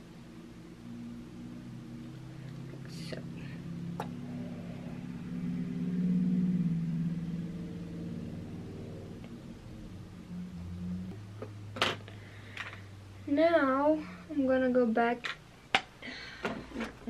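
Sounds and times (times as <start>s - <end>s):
low hum of held tones: 0.0s - 16.4s.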